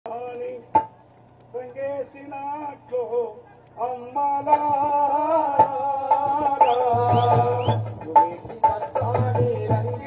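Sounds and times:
man singing into microphone: 0.1s - 0.9s, 1.5s - 10.0s.

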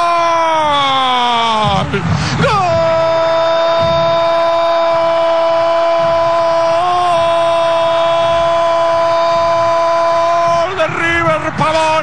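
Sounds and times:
commentator's long goal cry: 0.0s - 11.5s.

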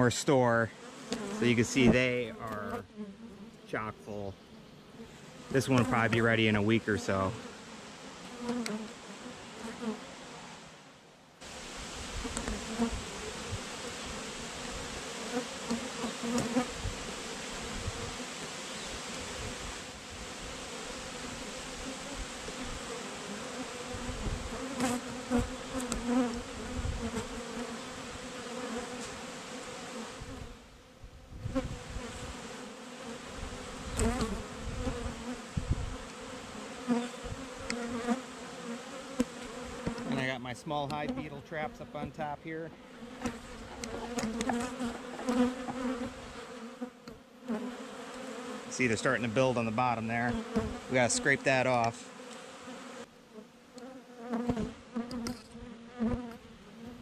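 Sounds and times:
bees buzzing: 0.0s - 10.8s, 11.4s - 57.0s.

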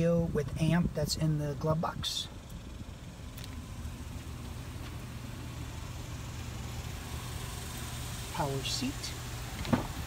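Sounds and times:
pickup truck idling: 1.3s - 10.0s.

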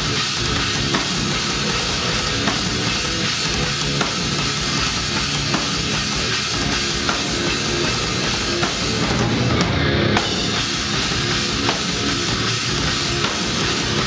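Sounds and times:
electric guitars: 0.0s - 14.0s
rapid bass-drum beats: 0.0s - 14.0s.

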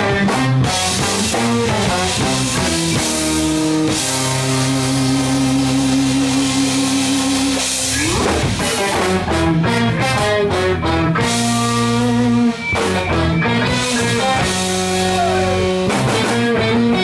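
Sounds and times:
jazz-rock band playing: 0.0s - 17.0s.

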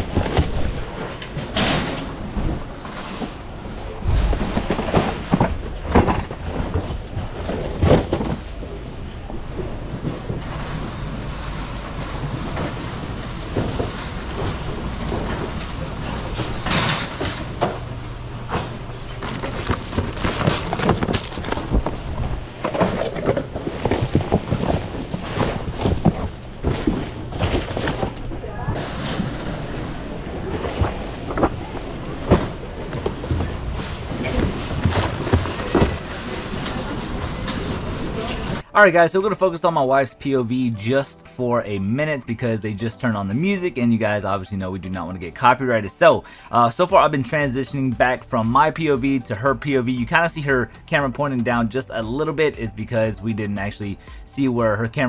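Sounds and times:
items knocking and clattering: 0.0s - 38.6s
shopping cart rattling: 0.0s - 38.6s, 42.0s - 55.0s
plastic packaging rustling: 9.8s - 38.6s
cardboard boxes shuffled: 18.6s - 29.5s, 30.4s - 38.6s.

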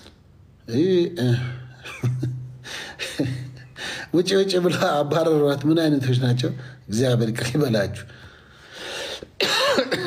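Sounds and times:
man breathing in: 2.6s - 3.0s, 3.7s - 4.1s, 8.1s - 9.4s
man coughing: 9.4s - 10.0s.

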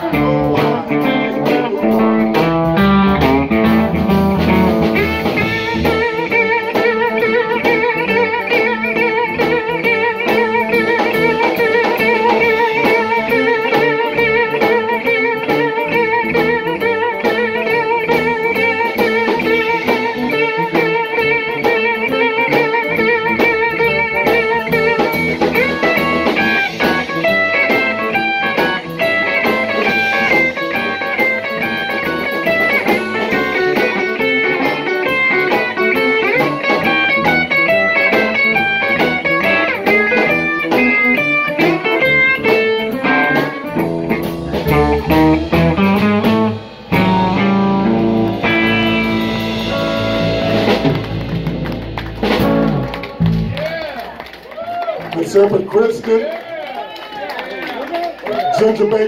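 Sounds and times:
electric guitar solo: 0.0s - 59.0s
live blues band: 0.0s - 59.0s.

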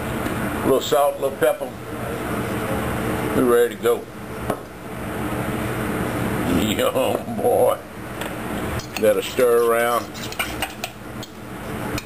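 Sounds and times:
air conditioning hum: 0.0s - 12.0s.

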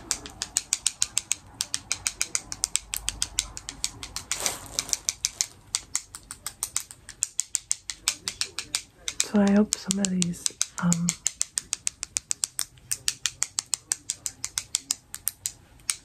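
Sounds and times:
rapid crisp clicking: 0.0s - 16.0s.

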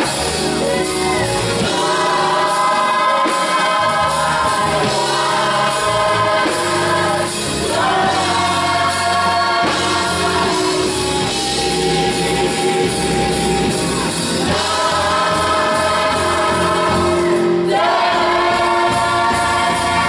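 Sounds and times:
band playing: 0.0s - 20.0s
gospel choir singing harmonies: 0.0s - 20.0s.

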